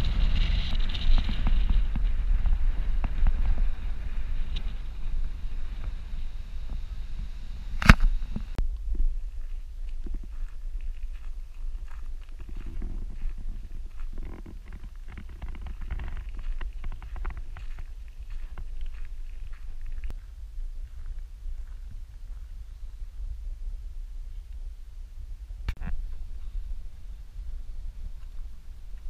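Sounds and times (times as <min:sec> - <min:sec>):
vehicle rolling on gravel: 0:00.0 - 0:06.4, 0:09.9 - 0:20.1.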